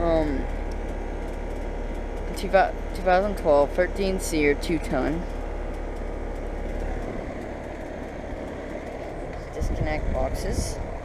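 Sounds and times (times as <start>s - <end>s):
air conditioner fan rushing: 0.0s - 11.0s
low hum: 0.0s - 11.0s.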